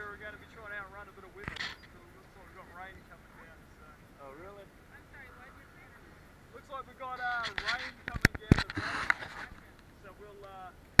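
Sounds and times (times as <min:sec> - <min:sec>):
indistinct voices talking: 0:00.0 - 0:10.5
camera handling rustle: 0:07.4 - 0:09.8.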